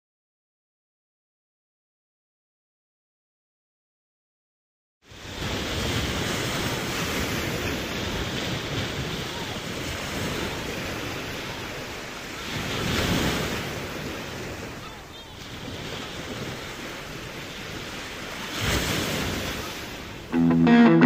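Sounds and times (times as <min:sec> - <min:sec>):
surf: 0:05.1 - 0:21.0.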